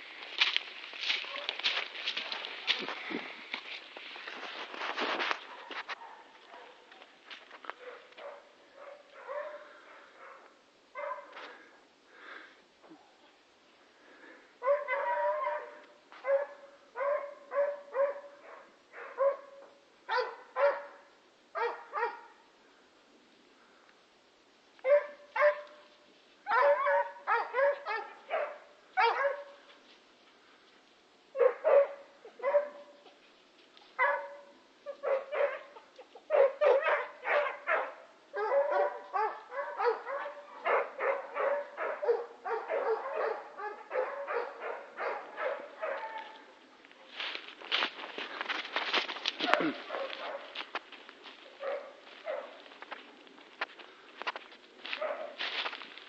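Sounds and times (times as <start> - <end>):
dog barking and yipping: 5.5 - 6.8, 7.8 - 10.4, 11.0 - 11.4, 14.6 - 21.0, 21.6 - 22.4, 24.8 - 25.8, 26.5 - 29.6, 31.4 - 33.0, 34.0 - 46.4, 49.4 - 50.6, 51.6 - 52.6, 55.0 - 55.4.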